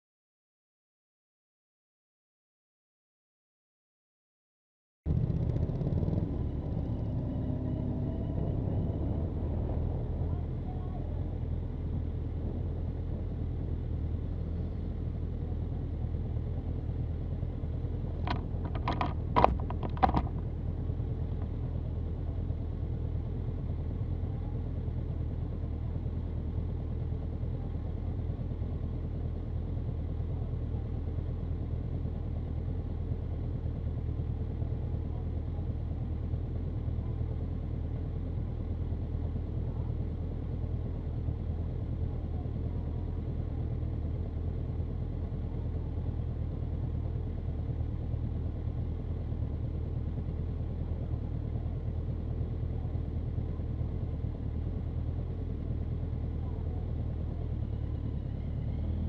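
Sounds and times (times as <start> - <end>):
motorcycle engine idling: 5.1 - 59.0.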